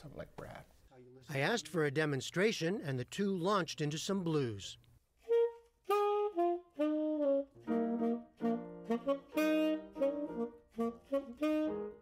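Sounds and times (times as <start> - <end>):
jazz piano accompaniment: 5.2 - 12.0
tenor saxophone playing blues: 5.2 - 12.0.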